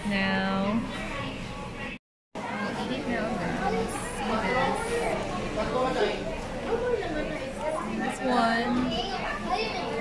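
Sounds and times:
chatter of voices: 0:00.4 - 0:10.0
children's voices: 0:02.4 - 0:06.1, 0:06.7 - 0:10.0.

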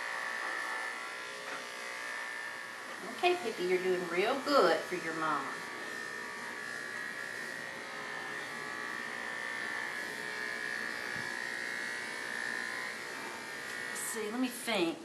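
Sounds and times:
electric clippers buzzing: 0:00.0 - 0:15.0.

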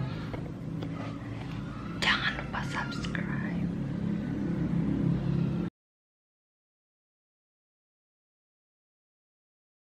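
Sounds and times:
steady low hum: 0:00.0 - 0:05.7
woman whispering: 0:02.0 - 0:03.7.

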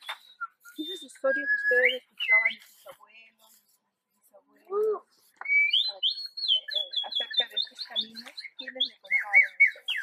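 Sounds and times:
bird singing warble: 0:00.0 - 0:02.7, 0:05.4 - 0:10.0.

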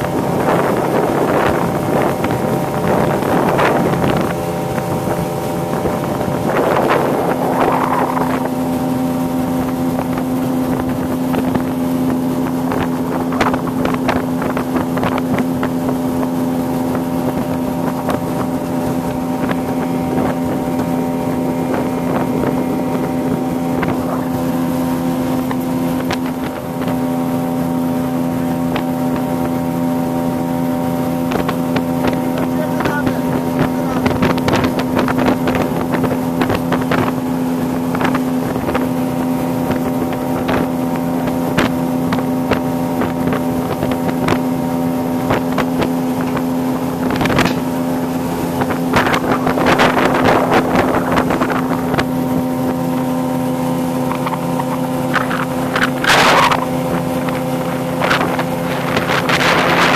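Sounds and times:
boat engine running: 0:00.0 - 0:59.9
water splashing against hull: 0:00.0 - 0:59.9.

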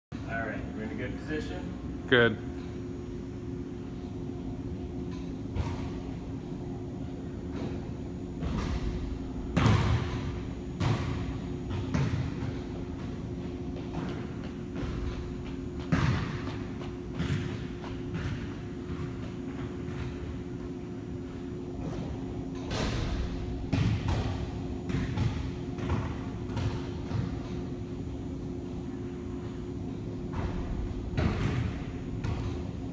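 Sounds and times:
low room hum: 0:00.1 - 0:32.9.

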